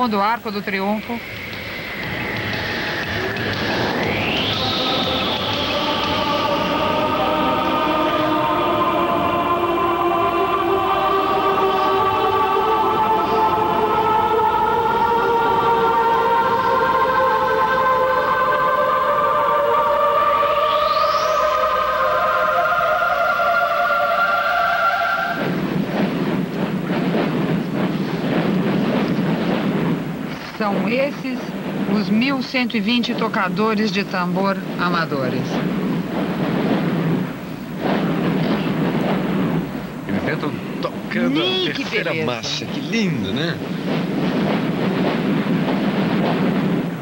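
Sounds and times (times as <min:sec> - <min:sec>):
rising sweep: 0:01.2 - 0:30.3
drum corps playing fast: 0:25.3 - 0:47.0.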